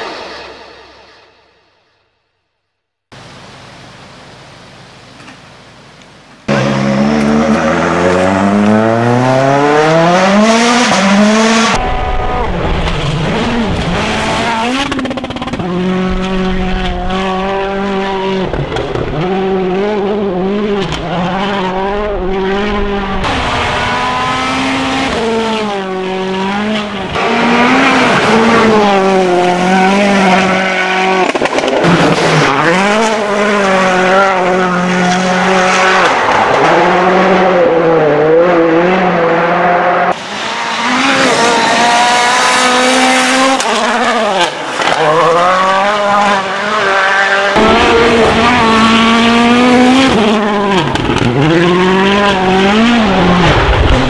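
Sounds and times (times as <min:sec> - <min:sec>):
rally car engine revving: 0:06.4 - 0:54.0.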